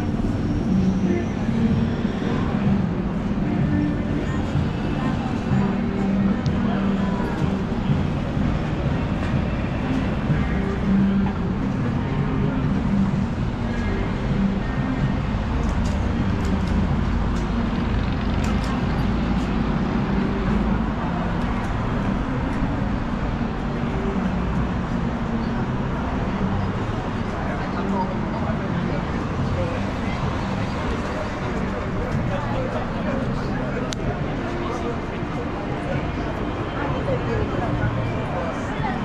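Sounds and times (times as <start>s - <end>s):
music: 0.0s - 39.0s
road traffic rumble: 0.0s - 39.0s
voices of passers-by: 0.0s - 39.0s.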